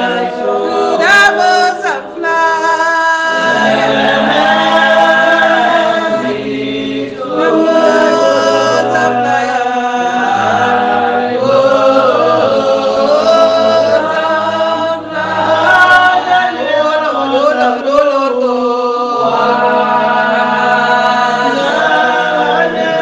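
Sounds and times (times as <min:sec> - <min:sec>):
group singing a slow worship song: 0:00.0 - 0:23.0.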